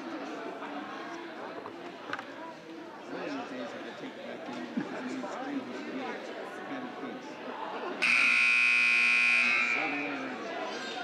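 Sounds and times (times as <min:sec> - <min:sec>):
scoreboard horn buzzing: 0:08.0 - 0:10.3.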